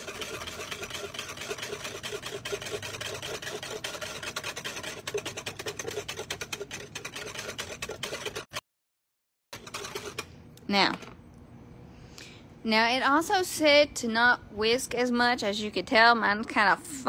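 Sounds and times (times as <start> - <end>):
wire whisk beating liquid: 0.0 - 8.6, 9.5 - 10.3.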